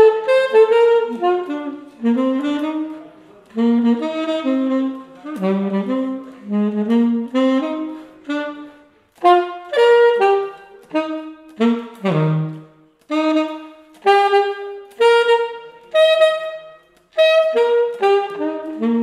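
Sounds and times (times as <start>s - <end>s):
alto saxophone melody: 0.0s - 19.0s.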